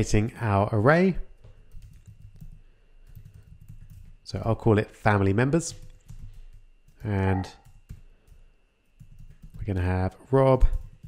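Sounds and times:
typing on computer keyboard: 1.6s - 4.2s, 5.7s - 11.0s.

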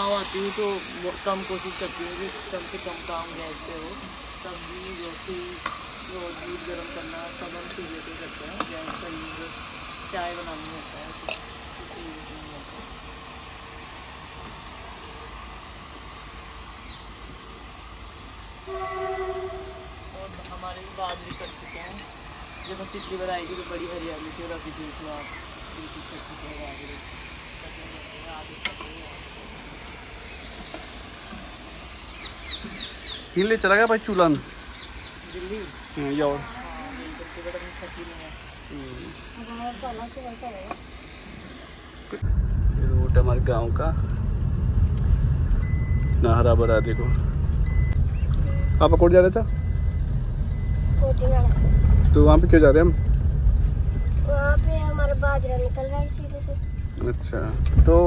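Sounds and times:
vegetables frying hiss: 0.0s - 44.0s
car interior engine and road noise: 42.0s - 58.0s.

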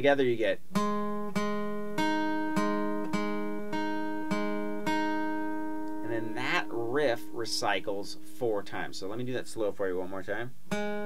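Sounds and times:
acoustic guitar riff: 0.0s - 11.0s.

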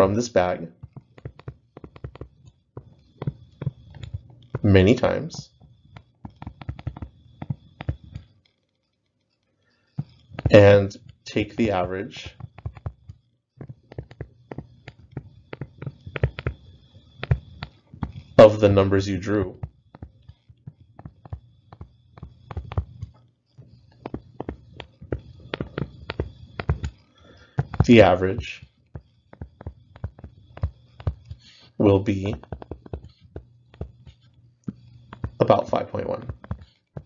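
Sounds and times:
stylus tapping on tablet screen: 0.8s - 4.8s, 5.6s - 8.3s, 10.0s - 18.5s, 19.3s - 37.0s.

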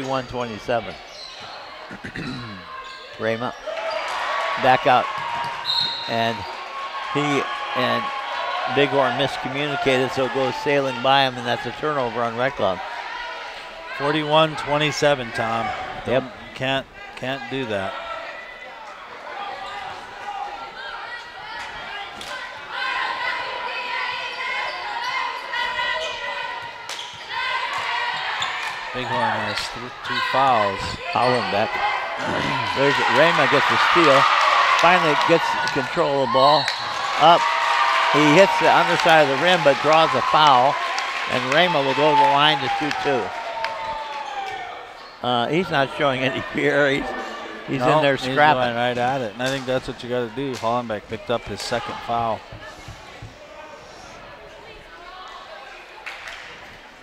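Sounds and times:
spectators and players shouting: 0.0s - 57.0s
crowd murmur: 1.4s - 2.9s, 17.9s - 36.4s, 44.8s - 50.4s.

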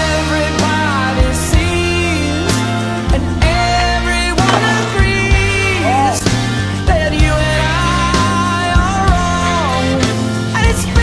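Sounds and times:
song with singing: 0.0s - 11.0s
skateboard hitting concrete: 4.5s - 5.5s.

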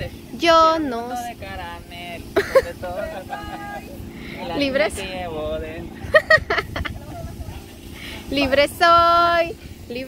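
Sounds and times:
low outdoor background: 0.0s - 10.0s
person laughing: 2.3s - 4.4s, 6.0s - 7.7s.

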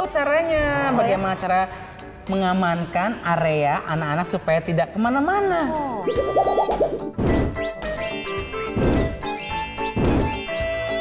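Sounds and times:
bright chiming jingle: 7.6s - 11.0s.

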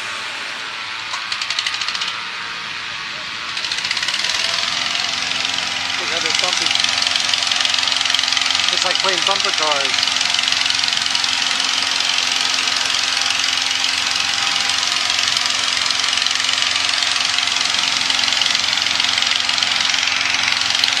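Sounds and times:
inflator fan engine roaring: 0.0s - 21.0s.

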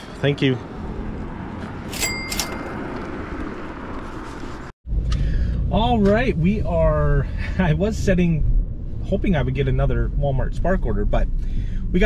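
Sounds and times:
outdoor background noise: 0.0s - 9.0s.

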